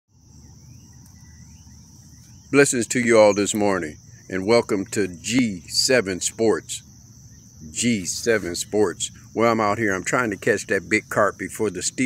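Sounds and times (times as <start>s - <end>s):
faint rising chirps: 0.1s - 9.4s
insects chirping at night: 0.1s - 12.0s.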